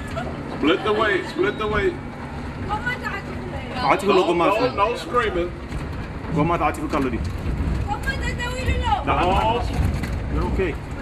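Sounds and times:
diesel engine rumble: 0.0 - 11.0.

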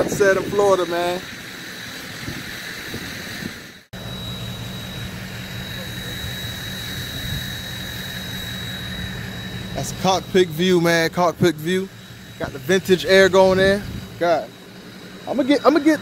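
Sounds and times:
engine idling with whine: 0.0 - 16.0.

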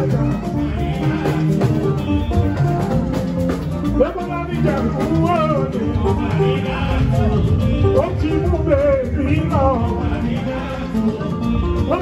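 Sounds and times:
person singing: 0.0 - 3.3, 3.9 - 12.0
live band music: 0.0 - 12.0.

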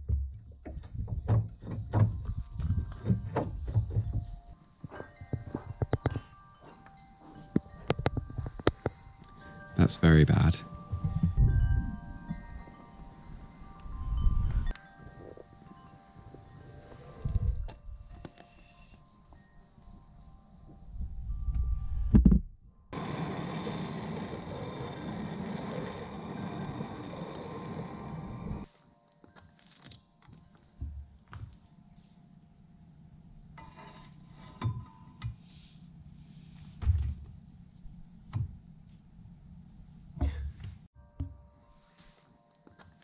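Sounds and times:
background music with ringing tones: 0.0 - 24.0, 26.8 - 36.6, 40.9 - 43.0
gas blowtorch hissing: 23.0 - 28.7.

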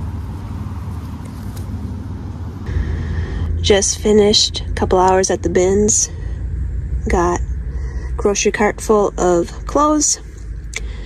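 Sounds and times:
car idling rumble: 0.0 - 11.0
steady high tone: 2.7 - 11.0.

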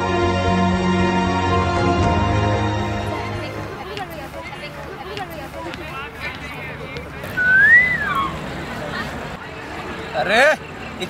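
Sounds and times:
rising and falling whistle: 7.4 - 8.4.

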